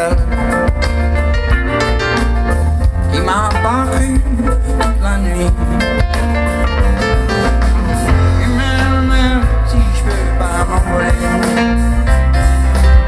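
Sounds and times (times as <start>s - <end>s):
drum kit beat: 0.0s - 13.0s
live rock band playing: 0.0s - 13.0s.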